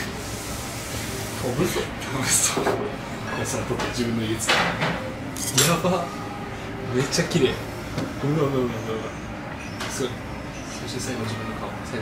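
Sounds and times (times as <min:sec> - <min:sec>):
tableware clinking: 0:03.8 - 0:05.9.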